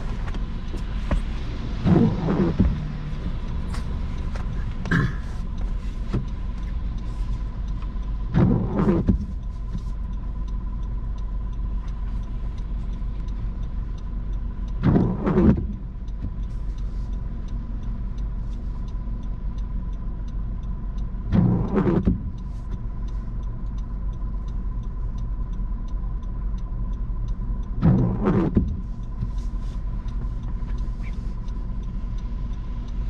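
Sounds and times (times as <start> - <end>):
car engine rumble: 0.0 - 33.0
windshield wipers swishing: 0.0 - 33.0.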